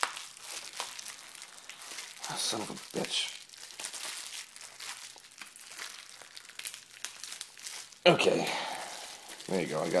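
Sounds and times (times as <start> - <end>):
bubble wrap bag crinkling: 0.0 - 10.0.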